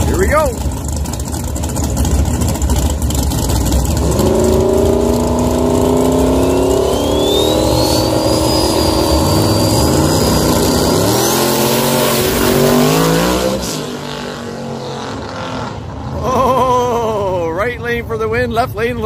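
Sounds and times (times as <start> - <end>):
race car engines revving: 0.0 - 19.0
thin high whine: 6.1 - 12.8.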